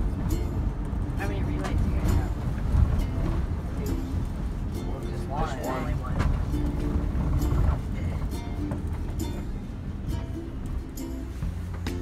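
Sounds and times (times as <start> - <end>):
van driving rumble: 0.0 - 12.0
music with regular beat: 6.4 - 12.0.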